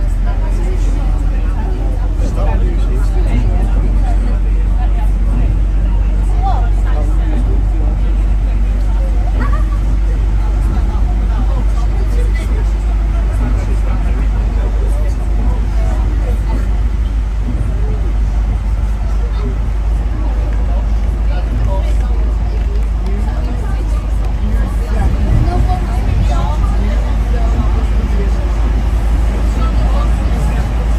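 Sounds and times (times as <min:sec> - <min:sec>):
indistinct chatter: 0:00.0 - 0:30.9
tyres on wet road: 0:00.0 - 0:30.9
vehicle engine rumble: 0:00.0 - 0:30.9.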